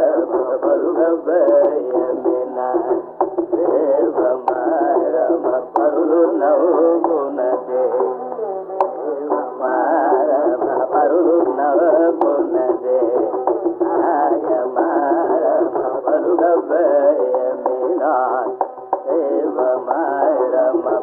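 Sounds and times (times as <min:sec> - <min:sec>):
carnatic concert music: 0:00.0 - 0:21.0.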